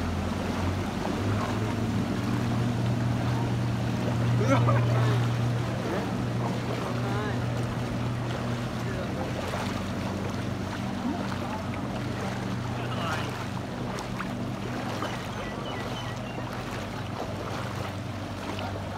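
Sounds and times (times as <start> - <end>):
floodwater rushing and sloshing: 0.0 - 18.9
low motor hum: 0.0 - 18.9
distant voices: 0.1 - 18.9.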